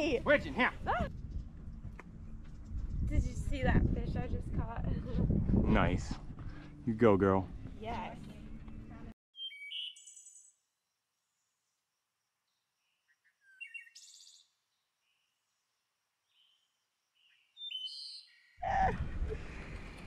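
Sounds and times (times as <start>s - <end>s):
small birds chirping: 8.0s - 10.6s, 12.4s - 18.6s.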